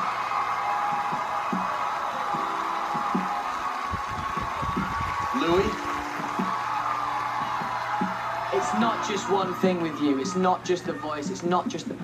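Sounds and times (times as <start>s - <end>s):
audience clapping: 0.0s - 10.1s
audience cheering and shouting: 0.0s - 11.8s.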